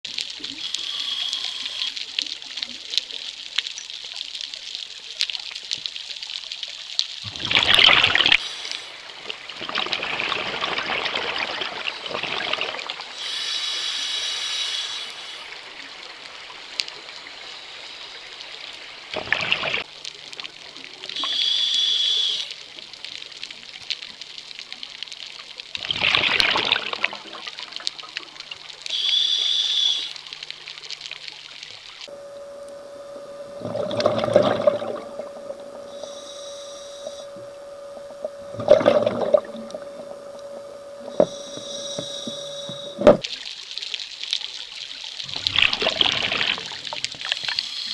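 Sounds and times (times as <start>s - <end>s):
fine underwater crackle: 0.0s - 47.9s
regulator hissing inhale: 0.5s - 2.0s, 8.4s - 9.0s, 13.1s - 15.6s, 21.2s - 22.6s, 28.9s - 30.3s, 35.6s - 38.4s, 39.8s - 43.0s, 47.3s - 47.9s
exhaled bubbles rushing: 7.2s - 8.4s, 9.2s - 13.1s, 19.1s - 19.8s, 25.8s - 28.6s, 33.2s - 36.0s, 37.3s - 41.4s, 45.2s - 47.4s.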